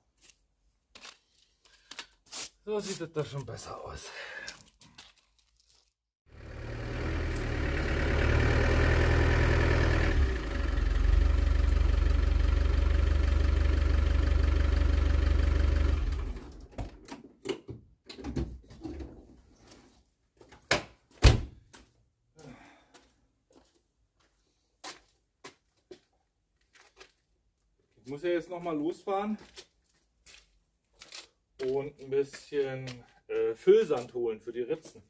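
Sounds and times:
engine running with deep hum: 6.3s - 16.7s.

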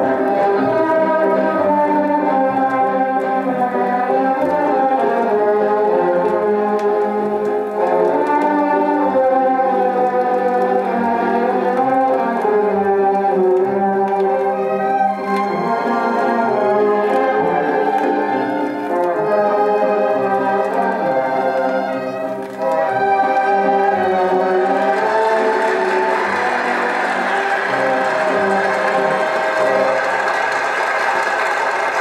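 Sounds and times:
orchestral music from gramophone record: 0.0s - 32.0s.

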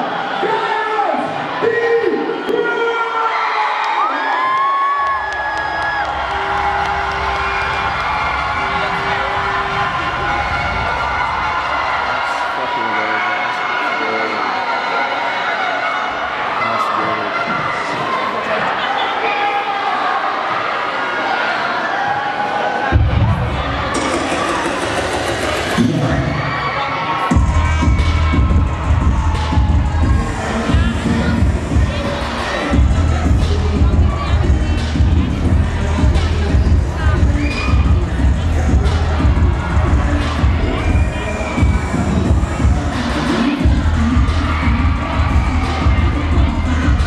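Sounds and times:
crowd cheering and screaming: 0.0s - 47.0s
dance music with heavy bass: 6.0s - 12.2s, 23.0s - 26.5s, 27.3s - 47.0s
low bass rumble: 27.4s - 32.0s.

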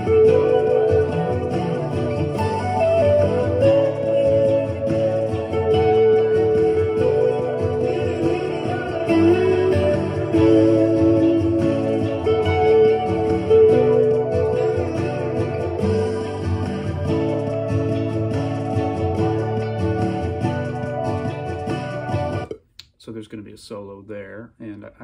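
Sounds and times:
electric guitar melody: 0.0s - 22.6s
backing track: 0.0s - 23.0s.

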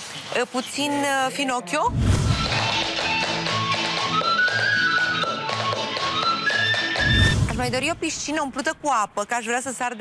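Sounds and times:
lively folk dance tune: 2.4s - 7.8s.

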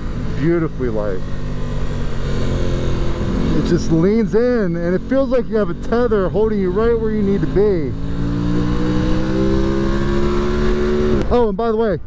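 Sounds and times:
motorcycle engine revving: 0.0s - 11.4s.

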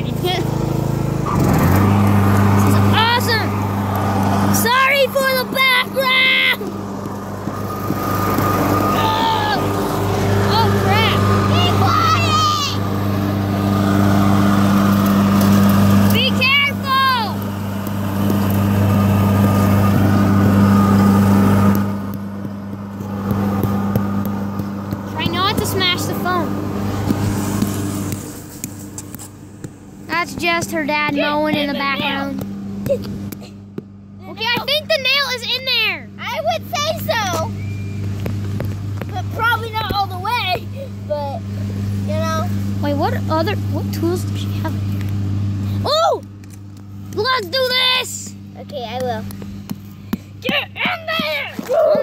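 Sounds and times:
voices talking: 0.0s - 28.9s, 30.0s - 46.4s, 47.1s - 52.0s
lawn mower engine running: 0.0s - 52.0s.

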